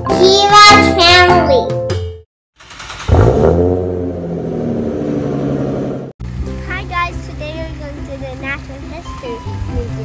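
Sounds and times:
car engine running: 2.6 - 9.4.

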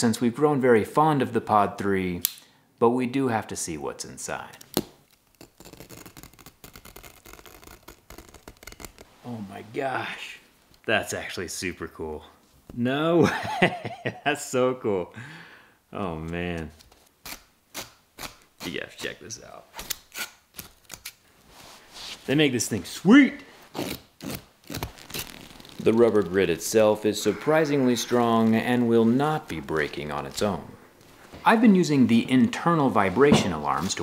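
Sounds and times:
knife cutting through fabric: 23.7 - 25.9.

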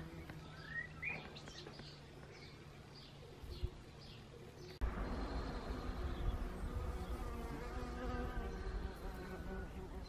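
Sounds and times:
flying insects buzzing: 0.0 - 1.4, 4.8 - 10.0.

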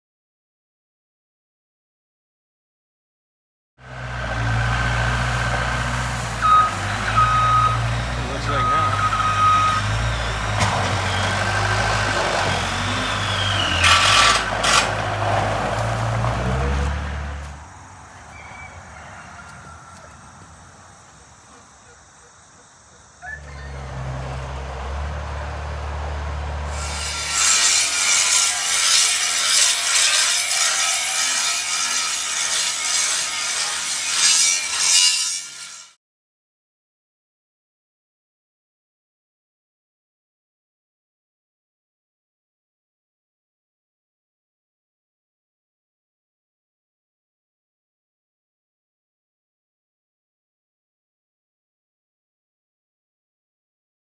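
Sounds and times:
heavy truck engine running: 3.8 - 19.0, 23.4 - 27.2
reversing alarm beeping: 6.4 - 11.7
rough steady scraping: 9.6 - 22.7, 23.3 - 35.9.

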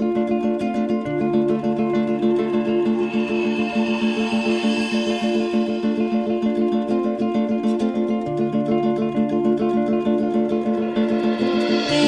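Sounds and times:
guitar plucked notes: 0.0 - 12.0.

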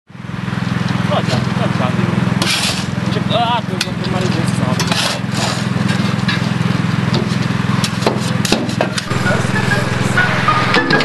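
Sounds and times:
engine droning: 0.1 - 11.0.

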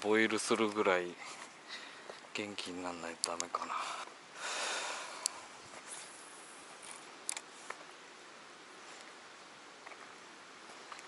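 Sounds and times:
low steady hiss: 0.0 - 11.0.

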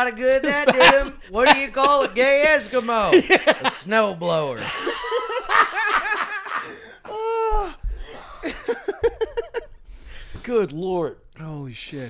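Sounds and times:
men laughing: 0.0 - 9.8.

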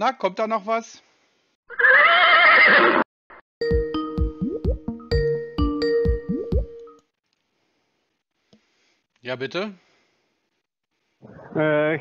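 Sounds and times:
wavering neigh-like call: 1.7 - 3.0.

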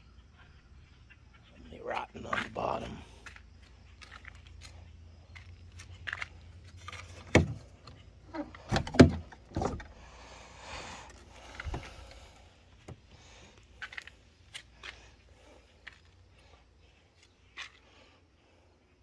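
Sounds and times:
handling clicks and rustles: 2.3 - 9.9, 12.8 - 15.2.

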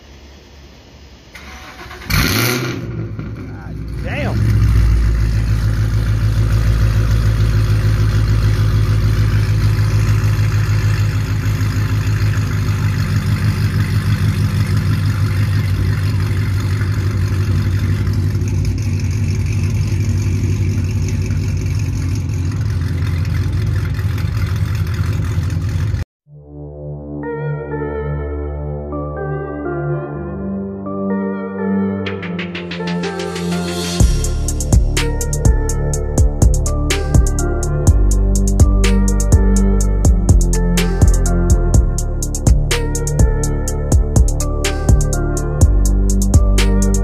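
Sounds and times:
car engine starting and idling: 0.0 - 26.1, 32.1 - 47.0.

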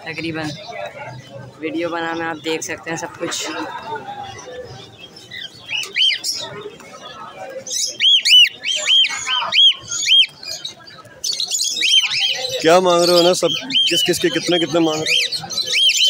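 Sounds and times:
caged birds chirping: 0.0 - 16.0.

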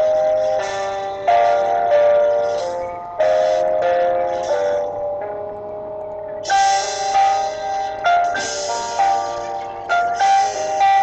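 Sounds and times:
melody of held notes: 0.0 - 11.0.

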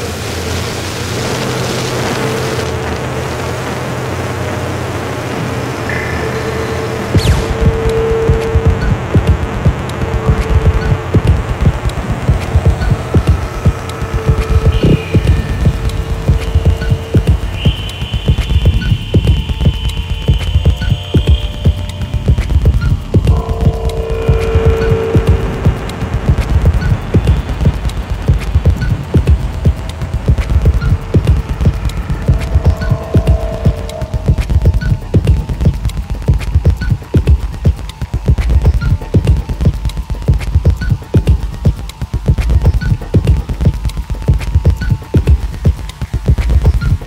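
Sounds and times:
high whine: 0.0 - 37.6
steady hum: 0.3 - 37.2
mid-pitched drone: 0.6 - 36.6
pulsing low rumble: 1.2 - 45.7
crackling clicks: 5.6 - 47.0
thin sustained electronic tones: 5.8 - 36.3.

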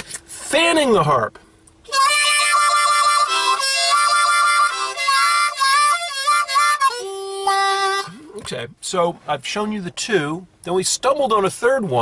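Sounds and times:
blues harmonica playing: 1.8 - 8.4.

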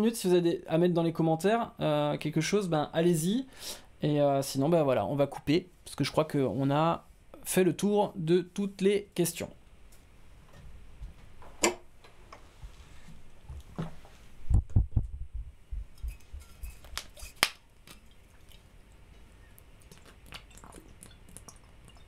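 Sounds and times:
low thumps: 14.4 - 16.3.

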